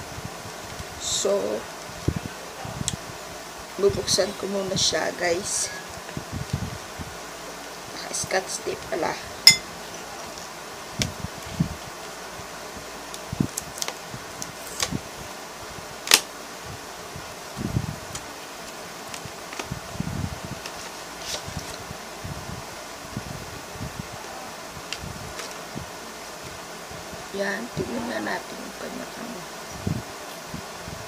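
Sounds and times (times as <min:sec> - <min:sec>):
background hiss: 0:00.0 - 0:31.0.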